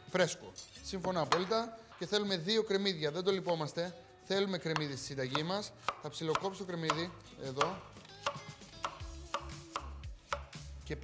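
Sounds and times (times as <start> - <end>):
knife knocking on wooden board: 1.2 - 1.5.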